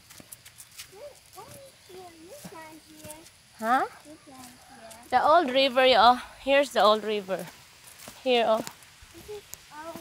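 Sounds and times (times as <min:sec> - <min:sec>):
footsteps on leaves and twigs: 0:00.0 - 0:05.9, 0:06.8 - 0:10.0.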